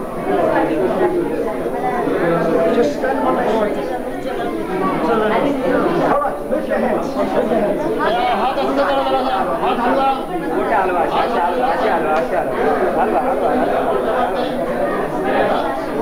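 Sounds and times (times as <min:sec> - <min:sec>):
crowd chatter in a hall: 0:00.0 - 0:16.0.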